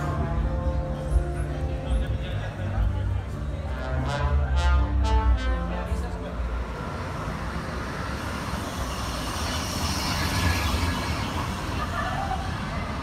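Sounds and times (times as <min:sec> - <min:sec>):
vehicle passing rumble and hiss: 0:05.9 - 0:13.0.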